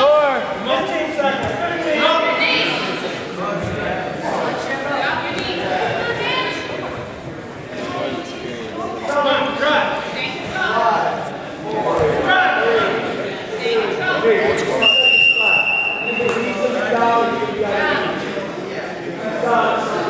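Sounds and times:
coaches and spectators shouting: 0.0s - 4.0s.

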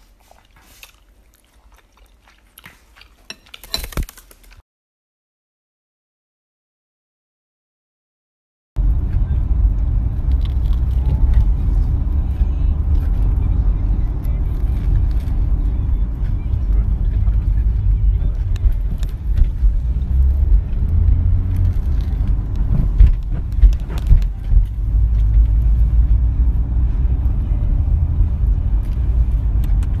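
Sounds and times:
car cabin rumble: 8.8s - 30.0s
sharp clicks and knocks: 21.0s - 25.5s.

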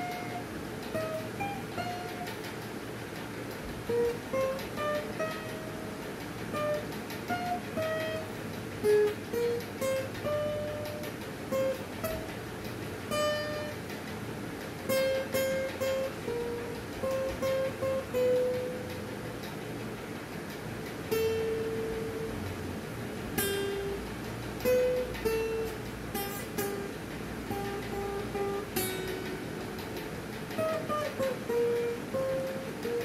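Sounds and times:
acoustic guitar single-note melody: 0.0s - 2.6s, 3.8s - 14.0s, 14.8s - 19.6s, 21.0s - 33.0s.

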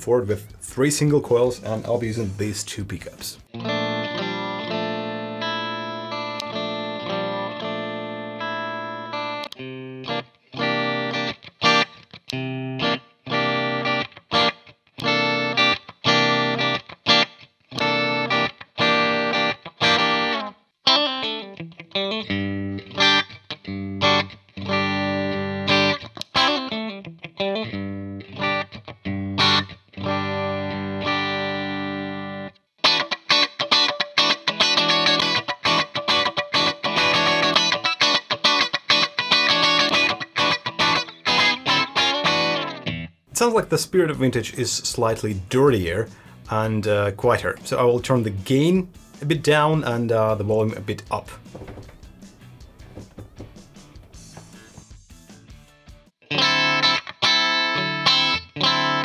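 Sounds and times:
electric guitar chords and notes: 3.4s - 59.0s.

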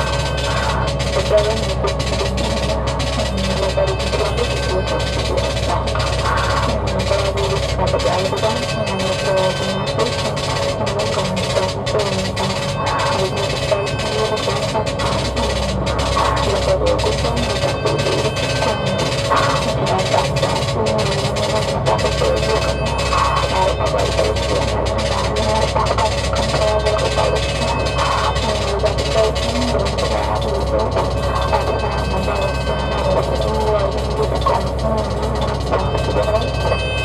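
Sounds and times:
electronic music with deep bass: 0.0s - 37.0s.

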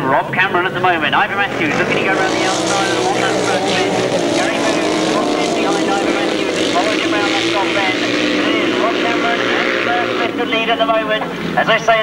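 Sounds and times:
racing engines revving: 0.0s - 12.0s.

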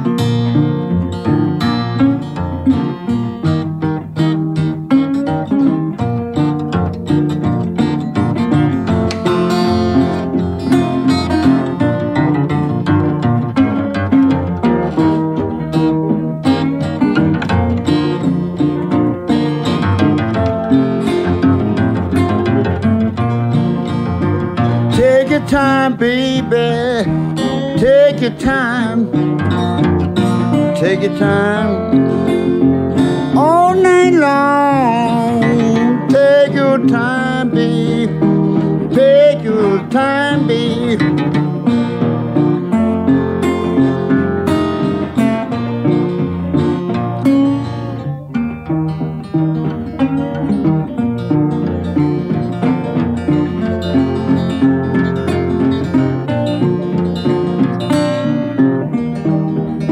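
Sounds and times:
acoustic blues guitar: 0.0s - 59.9s.

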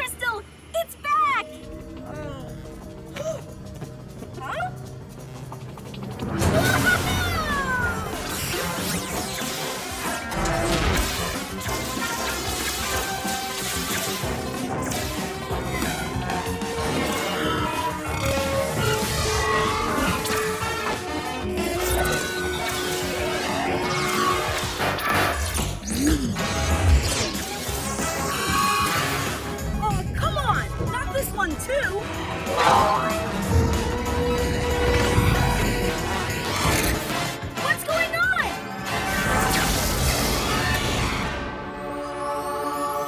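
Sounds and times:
cartoon action music: 4.3s - 42.3s.

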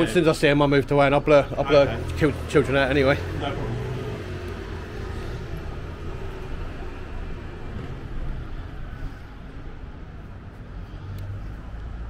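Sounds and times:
city street traffic: 0.0s - 12.0s.

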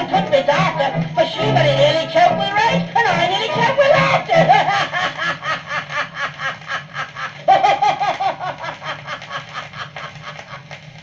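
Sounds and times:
low hum from record: 0.0s - 11.0s
man laughing: 3.1s - 10.8s.

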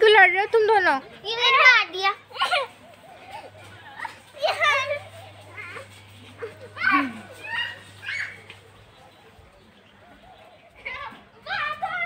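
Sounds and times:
faint child voices: 1.2s - 8.6s, 10.1s - 12.0s
child's high-pitched cry: 6.8s - 8.4s.

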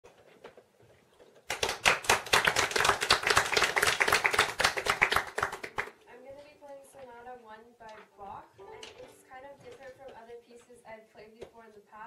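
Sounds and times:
small audience applauding: 1.4s - 6.0s.

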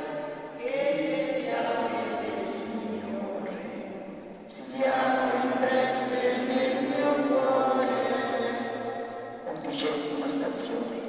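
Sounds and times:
voices chanting a hymn: 0.0s - 11.0s.

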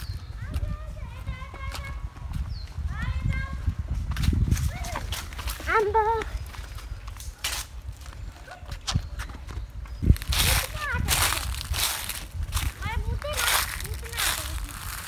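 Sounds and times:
footsteps on concrete and grass: 0.0s - 15.0s
low microphone rumble: 9.0s - 15.0s.

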